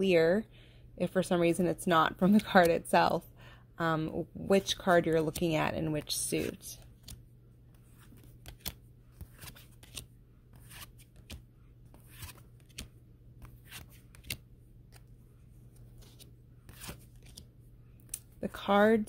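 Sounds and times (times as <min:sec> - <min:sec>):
cards clicking and sliding: 0:06.4 - 0:18.3.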